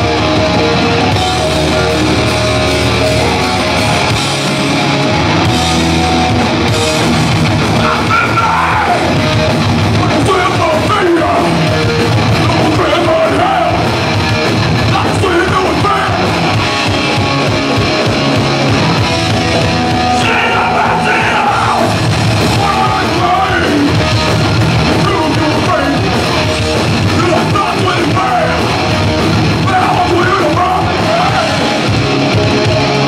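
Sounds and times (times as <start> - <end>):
bass guitar: 0.0 - 33.0
drums: 0.0 - 33.0
electric guitars: 0.0 - 33.0
person yelling vocals: 7.8 - 9.2, 20.2 - 22.0.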